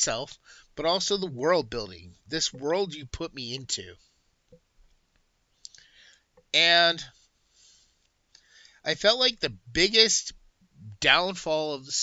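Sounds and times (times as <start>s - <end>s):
soft intake of breath: 0.4s - 0.8s, 5.7s - 6.4s, 7.1s - 8.9s
faint mouth clicks: 5.6s - 5.9s.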